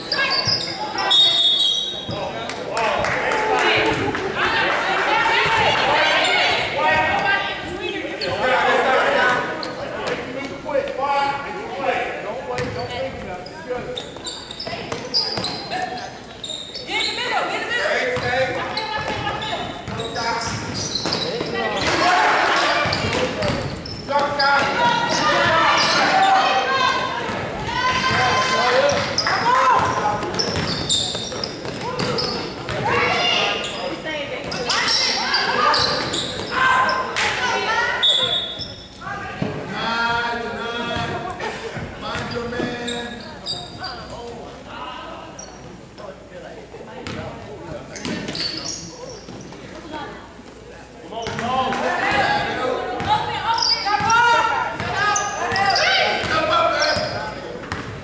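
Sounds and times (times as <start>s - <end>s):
people calling out: 24.1s - 33.9s
ball bouncing on hardwood court: 28.9s - 32.9s.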